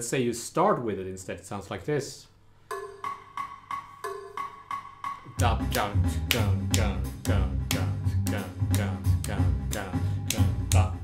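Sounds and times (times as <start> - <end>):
wood block metronome clicks: 2.7 - 7.9, 8.7 - 11.0.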